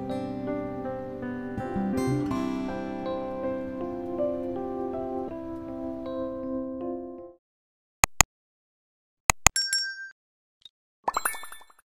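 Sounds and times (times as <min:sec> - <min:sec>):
rising run of chiming notes: 0:01.6 - 0:03.0.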